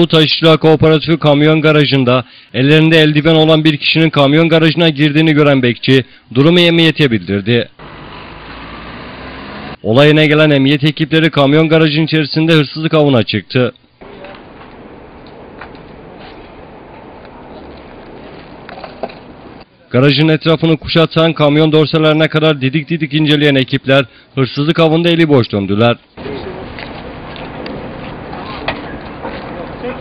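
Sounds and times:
steady noisy background: 0:26.0 - 0:30.0.

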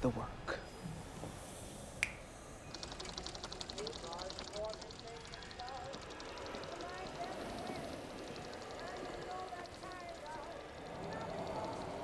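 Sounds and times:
fast pulsing high buzz: 0:01.4 - 0:12.0
finger snap: 0:02.0 - 0:02.3
faint wavering tones: 0:02.3 - 0:12.0.

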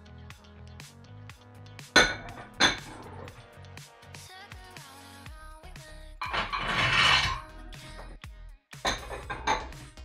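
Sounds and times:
background music: 0:00.0 - 0:10.0
metal weight plates clanking: 0:06.2 - 0:07.4.

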